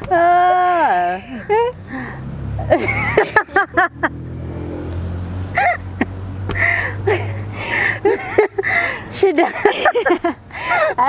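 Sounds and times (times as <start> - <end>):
women laughing: 0.6 - 1.8, 2.6 - 4.2, 5.5 - 11.0.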